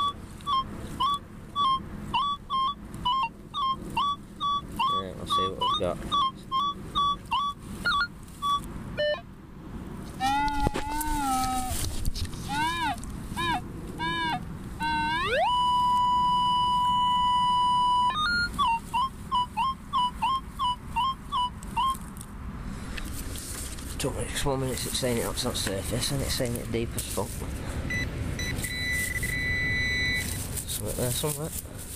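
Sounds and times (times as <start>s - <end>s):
metal detector beeps: 0.0s - 9.3s, 12.5s - 22.1s, 27.9s - 31.2s
metal detector gliding tone: 0.0s - 9.3s, 10.2s - 22.1s, 27.9s - 31.2s
metal detector warbling chirps: 0.0s - 9.3s, 10.2s - 11.8s, 12.4s - 22.1s, 27.9s - 30.4s.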